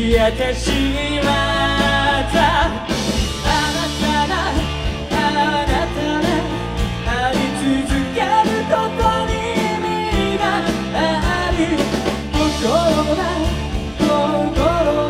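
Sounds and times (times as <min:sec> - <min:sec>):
drums: 0:00.0 - 0:15.0
electric guitars: 0:00.0 - 0:15.0
man singing: 0:00.0 - 0:15.0.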